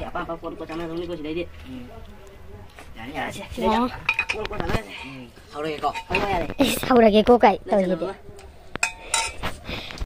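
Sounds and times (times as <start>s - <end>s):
metal spoons clinking on pot: 4.1s - 4.5s, 5.8s - 6.7s, 8.8s - 9.4s.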